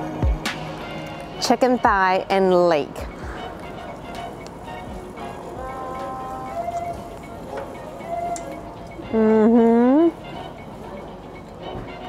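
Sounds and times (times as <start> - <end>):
street background noise: 0.0 - 12.0
person humming: 5.3 - 10.2.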